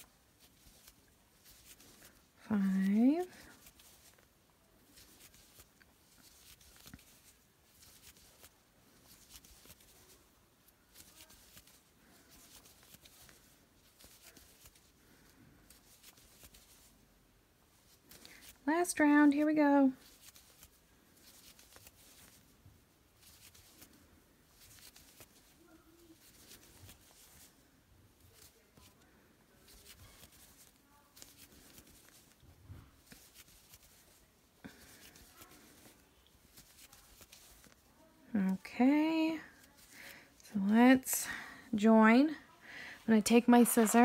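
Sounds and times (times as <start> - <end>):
yarn rustling through crochet hook: 0.0 - 44.0
person speaking: 2.4 - 3.7, 18.6 - 20.0, 34.7 - 44.0.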